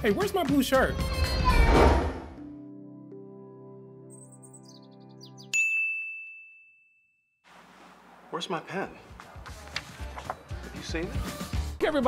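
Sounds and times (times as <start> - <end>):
sharp bell ding: 5.5 - 7.2.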